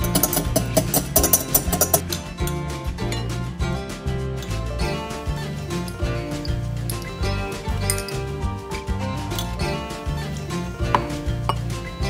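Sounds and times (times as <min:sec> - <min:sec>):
spoon knocking glass bowl: 0:00.0 - 0:02.0
background music: 0:00.0 - 0:12.0.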